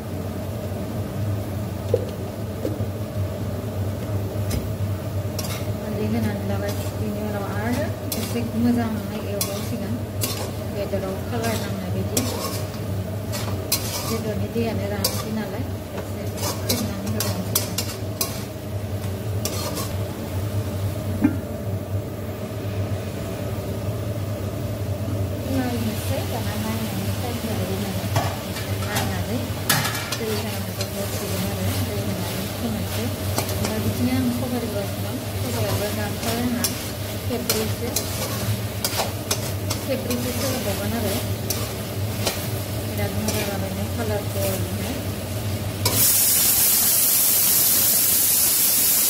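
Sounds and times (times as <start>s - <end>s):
frying sizzle: 0.0s - 49.0s
metal spatula scraping a pan: 5.4s - 5.7s, 7.8s - 8.6s, 9.4s - 10.6s, 11.4s - 14.4s, 15.0s - 15.4s, 16.3s - 18.6s, 19.4s - 20.0s, 35.4s - 42.6s.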